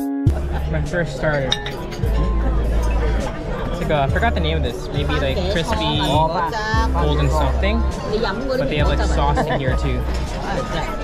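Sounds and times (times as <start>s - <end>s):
music with heavy bass: 0.0s - 8.0s, 8.8s - 11.0s.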